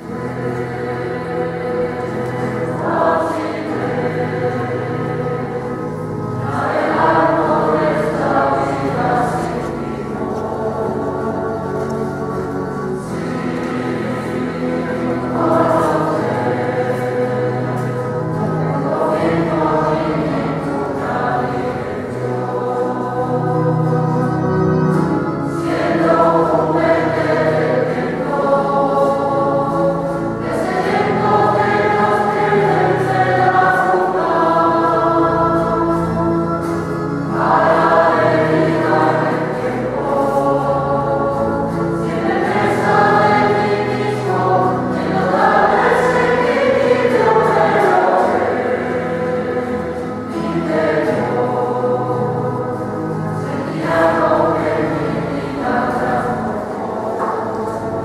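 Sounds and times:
choir singing a slow hymn: 0.0 - 58.0.

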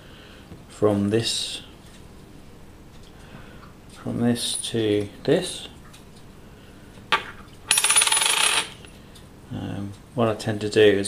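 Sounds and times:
coin clicking on saucer: 7.7 - 8.9
coin spinning rattle on dish: 7.7 - 8.9.

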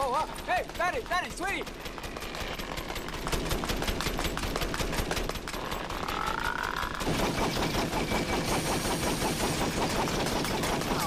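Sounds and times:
rapid machine-gun shots: 0.0 - 11.0.

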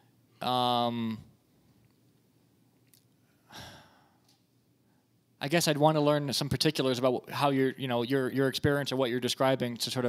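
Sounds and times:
man sighing: 3.5 - 4.2.

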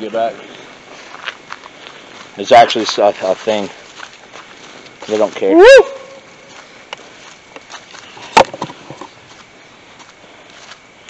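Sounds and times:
footsteps on leaf litter: 0.0 - 10.9.

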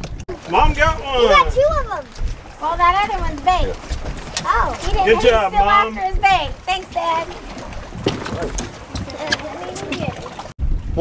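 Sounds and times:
wind buffeting microphone: 0.0 - 11.0
indistinct talking: 0.4 - 10.4.

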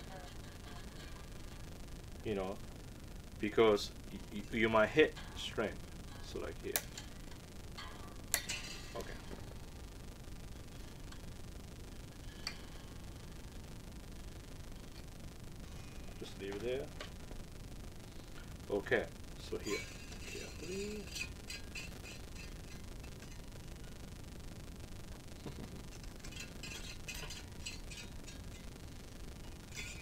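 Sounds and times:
faint ticks of tuning machines: 0.3 - 19.5
string ringing: 4.1 - 9.9
metallic snip of guitar string: 6.7 - 7.1, 7.8 - 9.2.

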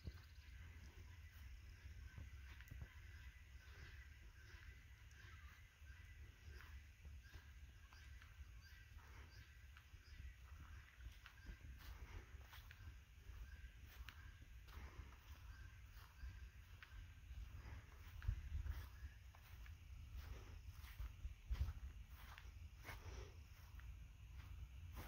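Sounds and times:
faint low rumble: 0.0 - 25.0
thin steady high tone: 0.0 - 25.0.

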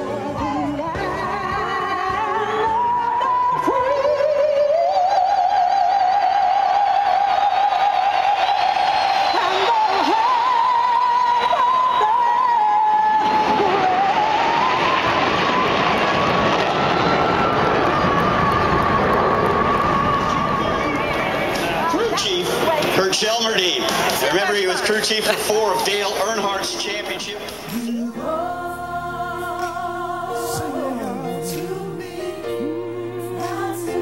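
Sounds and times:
crowd cheering: 5.0 - 28.4
woman singing sustained high note: 9.3 - 15.7, 27.7 - 34.0.

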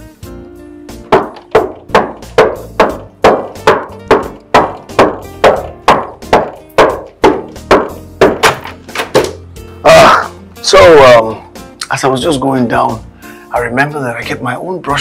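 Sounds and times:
background music: 0.0 - 15.0
knocking on wooden door: 1.1 - 9.4.

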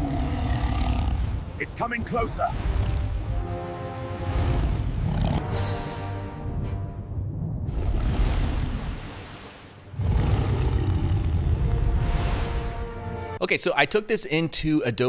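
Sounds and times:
dramatic music with held tones: 0.0 - 8.2, 11.5 - 13.4
stormy sea rumble: 0.0 - 13.3.

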